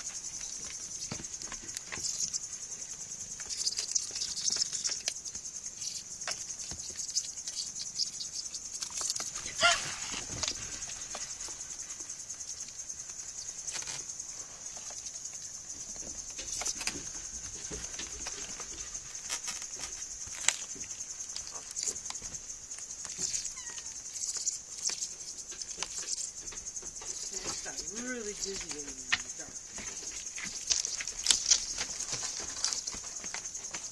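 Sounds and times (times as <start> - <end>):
crickets trilling: 0.0 - 33.9
kittens tapping and scuffling: 0.0 - 33.9.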